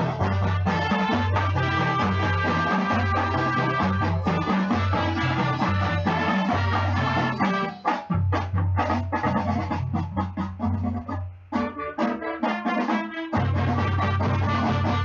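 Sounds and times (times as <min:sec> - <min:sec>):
marching band playing: 0:00.0 - 0:15.0.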